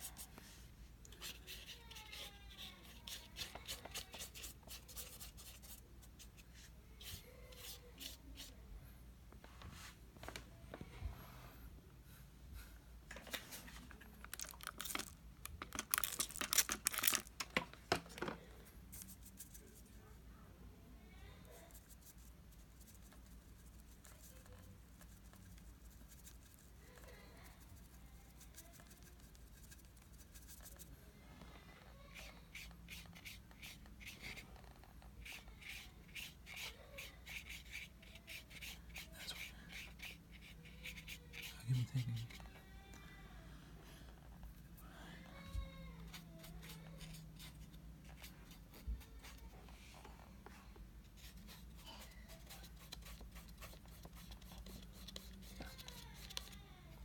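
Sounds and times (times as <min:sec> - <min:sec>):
brush scratching on paper: 0:00.0 - 0:08.5, 0:21.5 - 0:30.9, 0:32.2 - 0:42.4, 0:46.0 - 0:49.5, 0:51.2 - 0:56.5
plastic film crinkling: 0:14.2 - 0:17.6
person speaking and laughing: 0:41.5 - 0:42.5.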